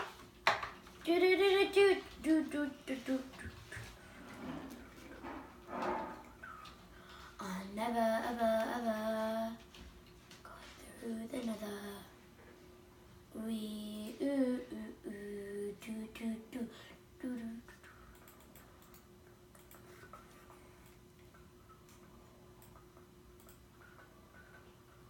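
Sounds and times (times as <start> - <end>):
faint small clicks: 20.8 - 24.6.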